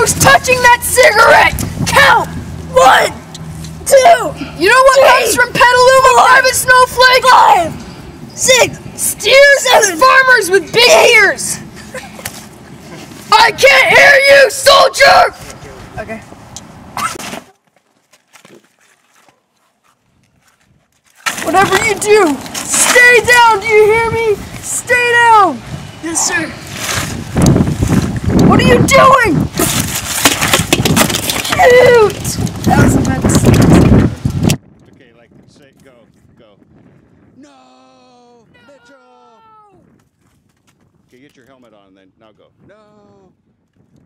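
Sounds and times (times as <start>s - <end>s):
boy shouting no: 0.0s - 3.2s, 3.8s - 7.7s, 8.4s - 11.6s, 13.3s - 15.4s, 21.4s - 26.6s, 28.5s - 29.4s, 31.5s - 33.4s, 37.4s - 39.9s.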